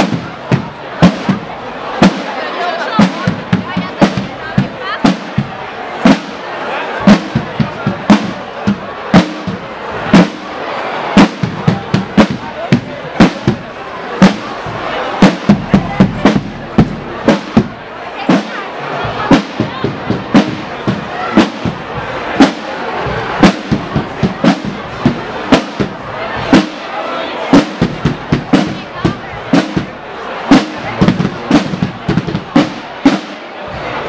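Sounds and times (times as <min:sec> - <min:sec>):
marching snare and bass drums: 0:00.0 - 0:10.6, 0:11.2 - 0:34.0.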